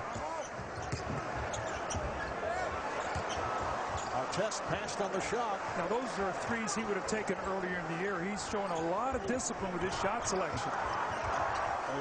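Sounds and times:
arena crowd noise: 0.0s - 12.0s
sneaker squeaks: 0.1s - 2.4s, 3.0s - 4.2s.

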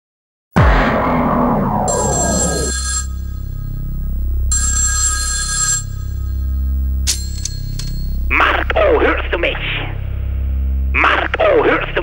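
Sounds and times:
booming hit: 0.6s - 2.7s
low synth drone: 0.6s - 5.0s, 5.8s - 12.0s
telephone ringing: 1.9s - 8.2s.

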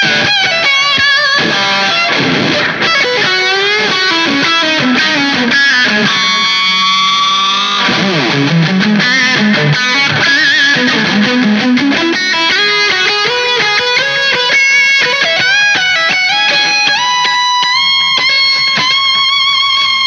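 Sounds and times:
electric guitar lead line: 0.0s - 20.0s.

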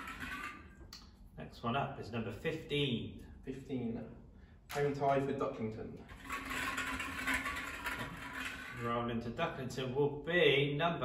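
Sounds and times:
plastic balls rattling in glass bowl: 0.0s - 0.7s, 6.1s - 9.1s.

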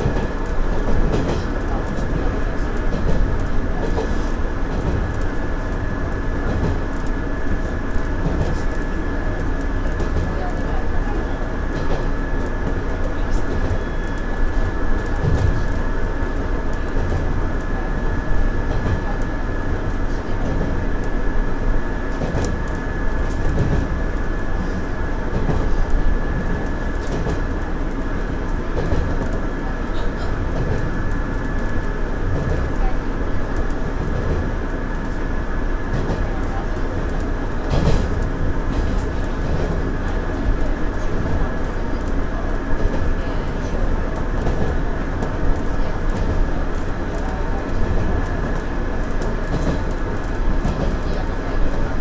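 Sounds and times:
rail joint click: 0.0s - 52.0s
train wheels rumbling on rail: 0.0s - 52.0s.

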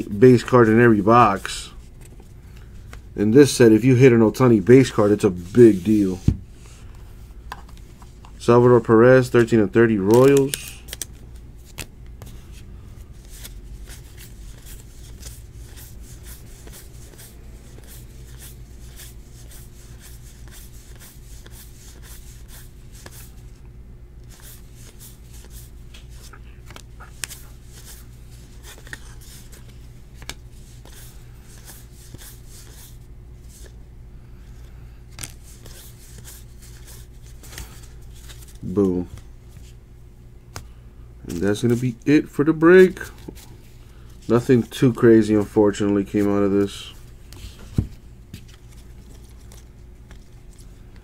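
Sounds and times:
person speaking: 0.0s - 1.8s, 3.1s - 6.4s, 8.3s - 10.9s, 38.5s - 39.2s, 41.2s - 43.3s, 44.2s - 47.1s
low room hum: 0.0s - 51.0s
trading cards flicking: 10.0s - 11.9s.

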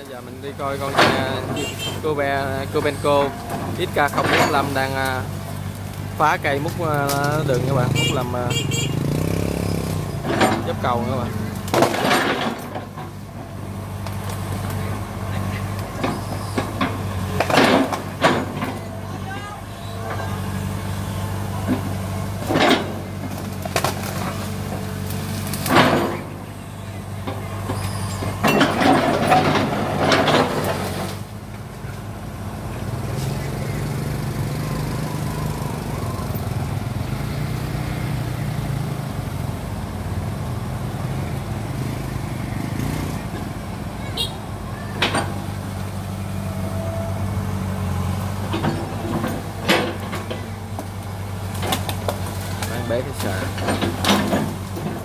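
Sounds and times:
trees and brush crashing and cracking: 0.0s - 38.4s, 44.9s - 55.0s
excavator diesel engine running: 0.0s - 55.0s.

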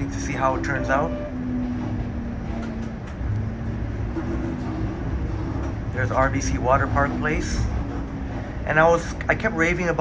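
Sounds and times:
streetcar rumbling along track: 0.0s - 10.0s.

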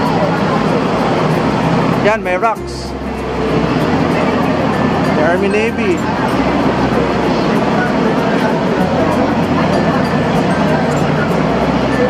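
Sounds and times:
city hum: 0.0s - 12.0s
low rumble of cars: 0.0s - 12.0s.

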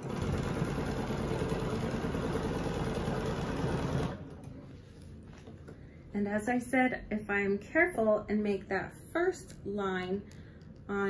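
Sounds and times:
sewing machine running: 0.0s - 4.4s.

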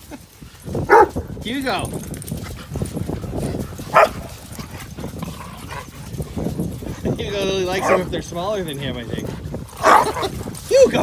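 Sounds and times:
dogs playing rough: 0.0s - 11.0s.

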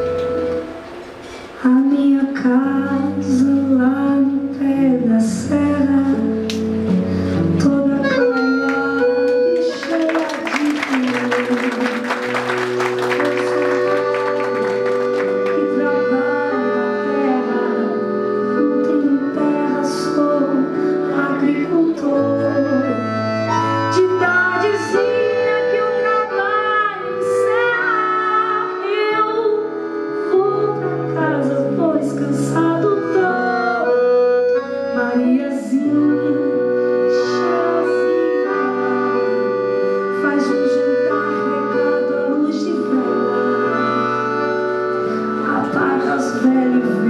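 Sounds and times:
woman singing: 1.6s - 6.6s, 7.4s - 44.6s, 45.4s - 47.0s.

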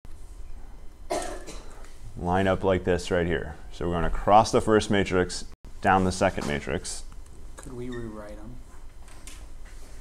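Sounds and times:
man coughing: 1.1s - 1.8s.

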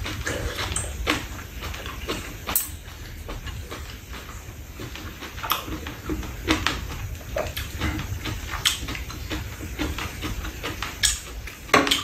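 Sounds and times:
low steady hum: 0.0s - 12.0s
wet chewing and mouth smacks: 0.0s - 12.0s.

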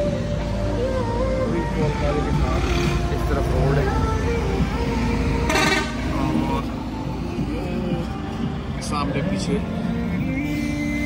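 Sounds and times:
highway traffic: 0.0s - 11.0s
truck engine passing: 0.0s - 11.0s
background voices: 0.3s - 11.0s.

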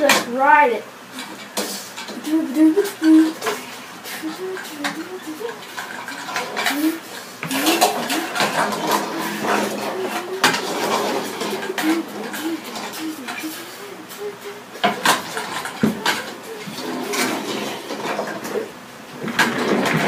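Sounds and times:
person humming: 2.1s - 17.8s
plastic toys clattering on wood: 4.3s - 13.8s, 14.8s - 20.0s.

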